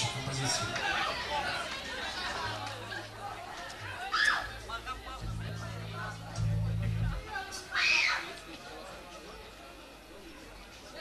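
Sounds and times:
indistinct chatter of voices: 0.0 - 11.0
low steady hum: 5.2 - 7.6.

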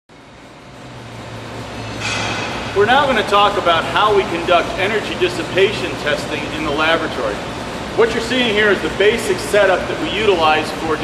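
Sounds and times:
low machinery hum: 0.1 - 11.0
noisy background: 0.1 - 11.0.

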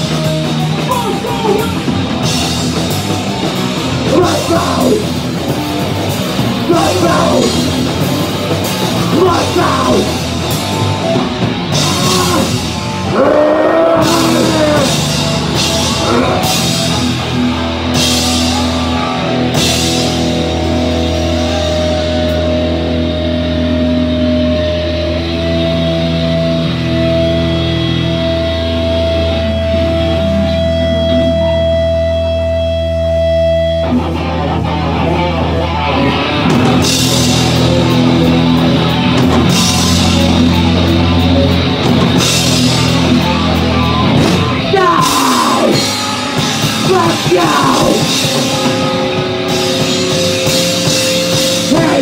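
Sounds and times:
heavy rock band playing: 0.0 - 52.0.

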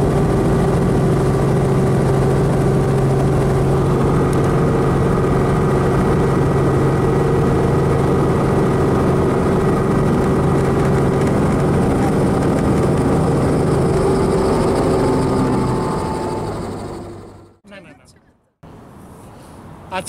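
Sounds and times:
helicopter engine and rotor: 0.0 - 17.6.

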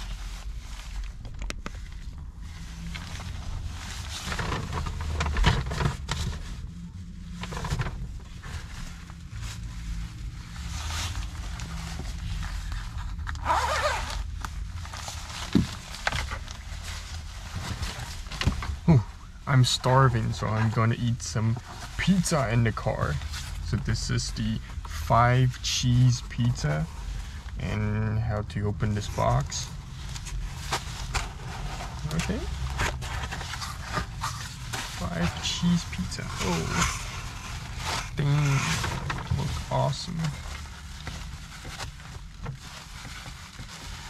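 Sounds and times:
cardboard rustling and scraping: 0.0 - 19.0, 28.8 - 44.0
steady low hum: 14.0 - 44.0
paper bag rustling: 29.1 - 44.0.

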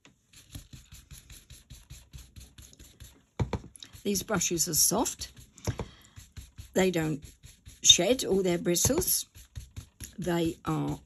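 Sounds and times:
stencil brush scratchy brushing: 0.0 - 11.0.

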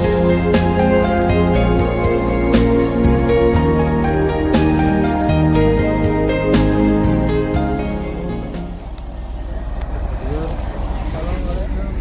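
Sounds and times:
background music: 0.0 - 9.7
engine running with low rumble: 0.0 - 12.0
people talking: 9.8 - 12.0.

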